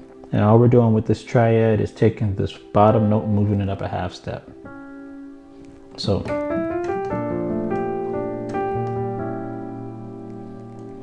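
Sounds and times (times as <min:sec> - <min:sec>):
piano chord: 0:00.0 - 0:11.0.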